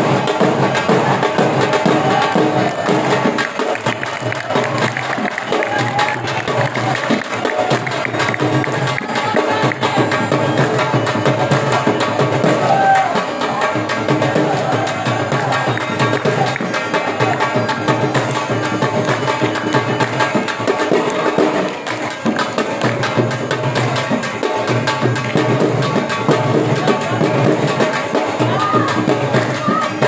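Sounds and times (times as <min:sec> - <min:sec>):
fast drum rhythm: 0:00.0 - 0:30.0.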